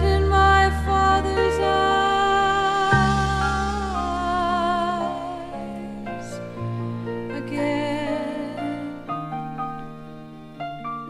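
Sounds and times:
slow sad piano ballad: 0.0s - 11.0s.

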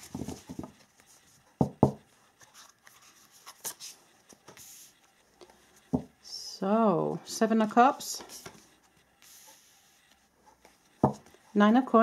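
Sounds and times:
card rustles: 2.4s - 4.7s, 8.0s - 11.4s
cards tapping on table: 11.0s - 11.3s.

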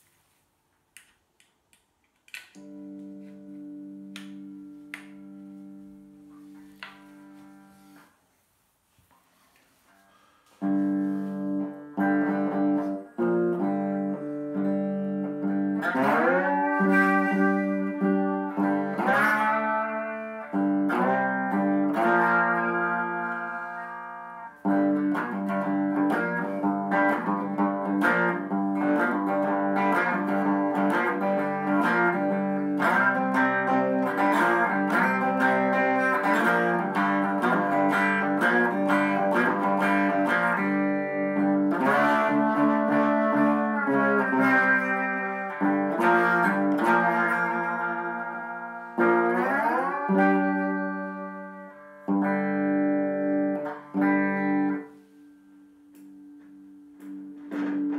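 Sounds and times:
rhythmic guitar picking: 2.3s - 8.1s, 10.2s - 57.9s
slide guitar notes: 2.3s - 8.1s, 10.1s - 57.9s.

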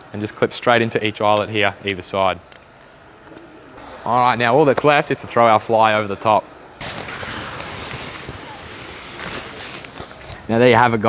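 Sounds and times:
tent fabric rustling: 6.8s - 10.5s.

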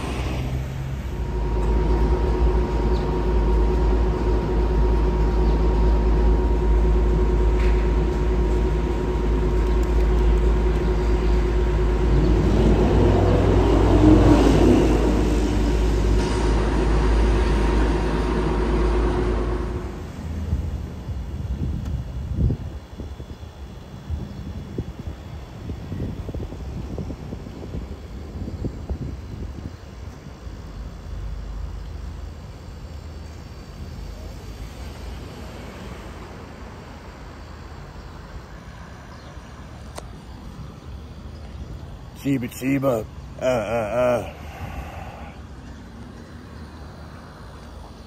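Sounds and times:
vehicle passing: 0.0s - 4.1s, 10.0s - 20.5s
distant helicopters rumbling: 0.0s - 48.0s
traffic engine rumble: 0.0s - 48.0s.

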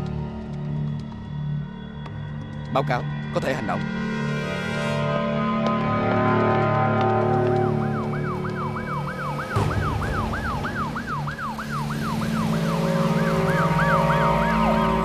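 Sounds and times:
background music: 0.0s - 15.0s
police siren yelping: 7.6s - 15.0s.

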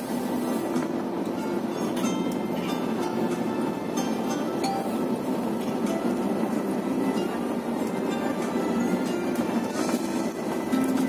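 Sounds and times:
bus engine and road rumble: 0.0s - 11.0s
music playing: 0.6s - 11.0s.

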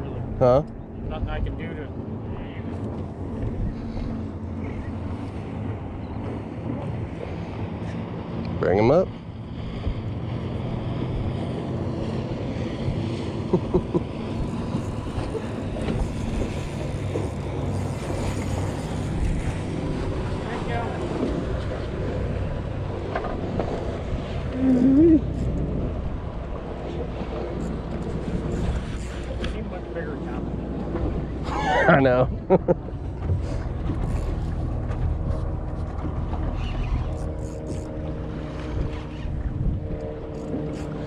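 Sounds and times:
wind buffeting microphone: 0.0s - 13.5s, 14.1s - 41.0s
water moving around boat: 0.0s - 41.0s.

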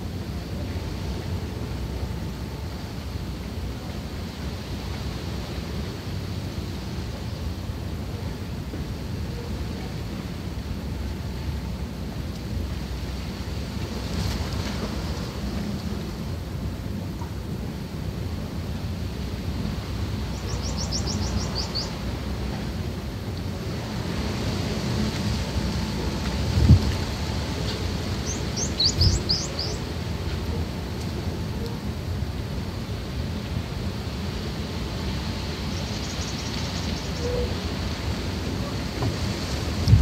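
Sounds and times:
low rumbling background noise: 0.0s - 40.0s
small bird chirping trill: 20.4s - 21.9s, 28.2s - 29.8s.

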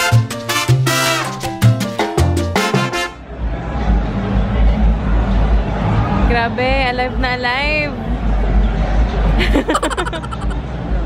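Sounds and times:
person laughing: 9.4s - 10.6s.

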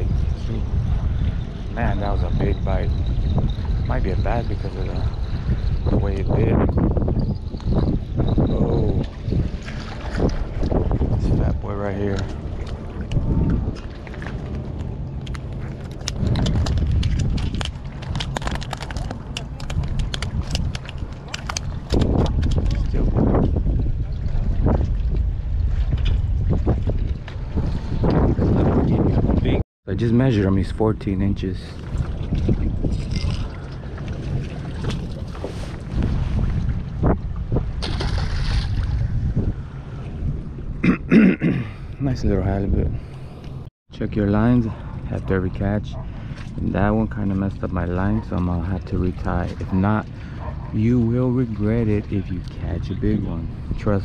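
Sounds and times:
wind rumbling on microphone: 0.0s - 54.0s
water splash: 31.7s - 40.0s.

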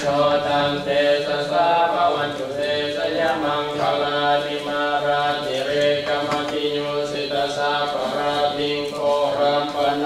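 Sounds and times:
group chanting in unison: 0.0s - 10.0s.

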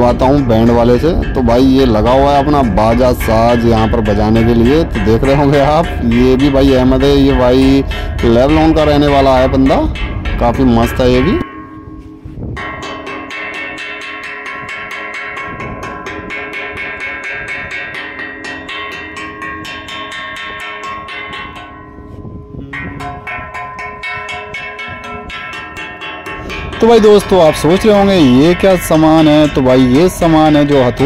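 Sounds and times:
hammer striking rusty steel: 0.0s - 31.0s.

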